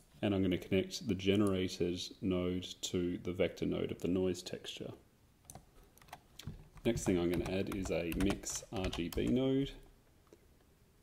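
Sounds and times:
computer keyboard clicks: 0:05.5 - 0:09.4.

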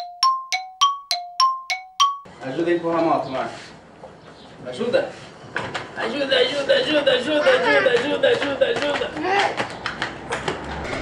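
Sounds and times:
two-note bell chime: 0:00.0 - 0:02.3.

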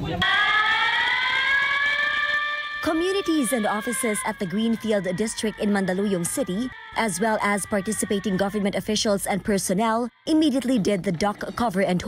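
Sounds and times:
warning siren wailing: 0:00.2 - 0:12.0.

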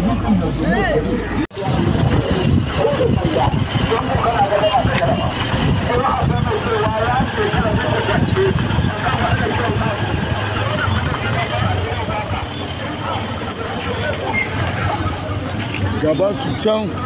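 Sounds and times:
people talking and calling: 0:00.0 - 0:17.0
vehicle engines rumbling: 0:00.0 - 0:17.0.

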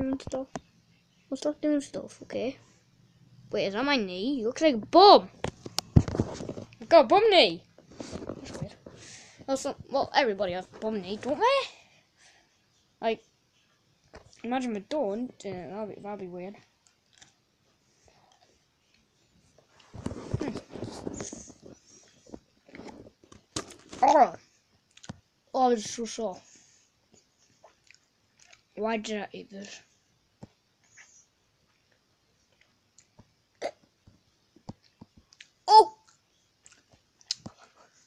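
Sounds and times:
boy's hiccup-like throat sound: 0:33.6 - 0:33.8.

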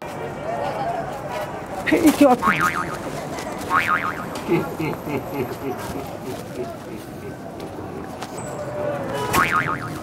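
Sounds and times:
crowd chatter: 0:00.0 - 0:10.0
wobbling boing tone: 0:02.4 - 0:02.9, 0:03.7 - 0:04.2, 0:09.4 - 0:10.0.

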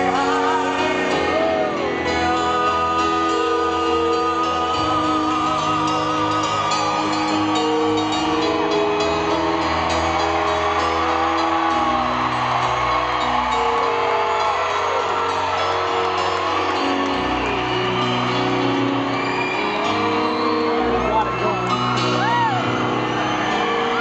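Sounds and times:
crowd cheering and whooping: 0:00.0 - 0:24.0
rock band playing slow chords: 0:00.0 - 0:24.0.

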